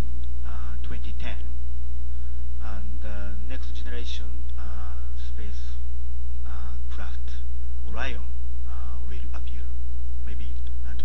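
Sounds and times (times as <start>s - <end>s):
electrical mains hum: 0.0s - 11.0s
man speaking into a microphone: 0.4s - 1.6s, 2.6s - 5.8s, 6.4s - 11.0s.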